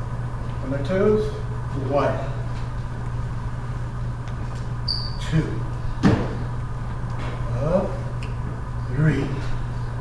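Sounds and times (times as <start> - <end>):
low room hum: 0.0 - 10.0
short high squeak: 4.9 - 5.4.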